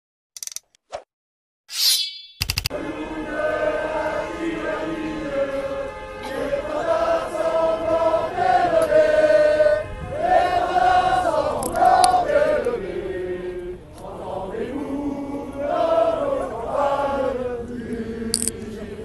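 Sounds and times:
sound effect clicks and swish: 0.4s - 1.1s, 1.7s - 2.7s
crowd chanting in unison: 2.7s - 19.0s.

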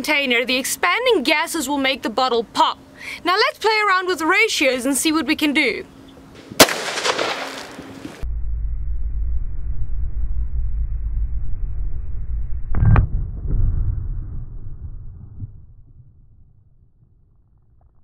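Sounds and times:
rifle shot echoing: 6.6s - 8.2s
low steady drone: 8.1s - 17.0s
loud deep boom: 8.2s - 17.2s.

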